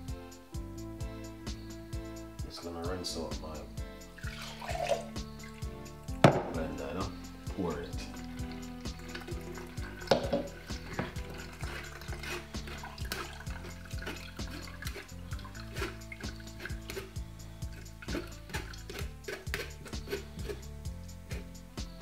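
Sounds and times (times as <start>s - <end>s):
background music: 0.0s - 22.0s
juice trickling through strainer: 4.2s - 5.8s, 6.9s - 20.7s
spoon scraping mesh strainer: 6.6s - 22.0s.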